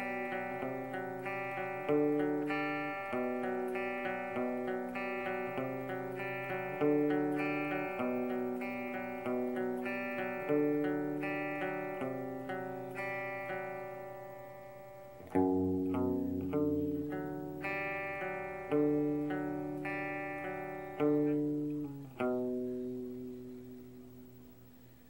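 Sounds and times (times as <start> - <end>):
electric guitar chords ringing: 0.0 - 25.0.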